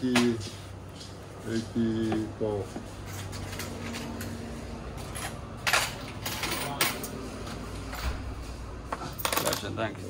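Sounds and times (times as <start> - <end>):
coins clinking on a counter: 5.0 - 7.2, 9.0 - 9.9.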